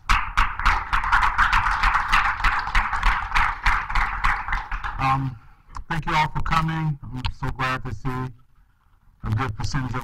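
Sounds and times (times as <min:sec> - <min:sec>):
audience applauding: 0:00.1 - 0:05.3.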